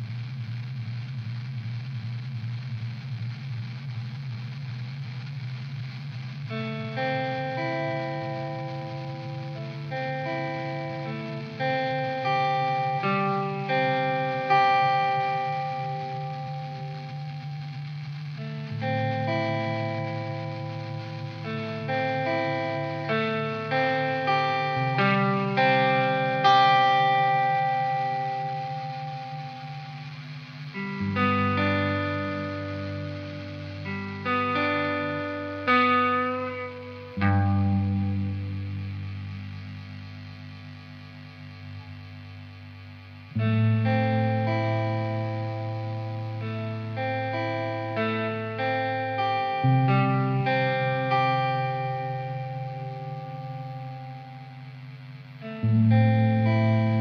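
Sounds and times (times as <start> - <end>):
slow rock guitar with echo: 0.0 - 57.0.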